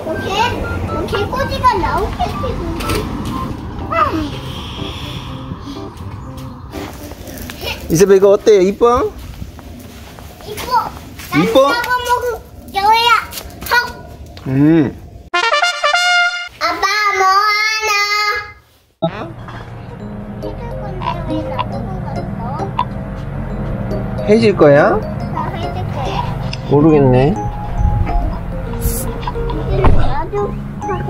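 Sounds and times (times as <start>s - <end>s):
child calling in sing-song voice: 0.0s - 3.2s, 16.5s - 18.6s, 20.4s - 22.8s, 27.7s - 31.0s
steady low rumble: 0.5s - 7.9s
man and children talking: 7.7s - 9.2s, 11.3s - 12.4s, 24.2s - 25.0s, 25.6s - 27.4s, 29.6s - 30.3s
rustle: 9.2s - 14.8s.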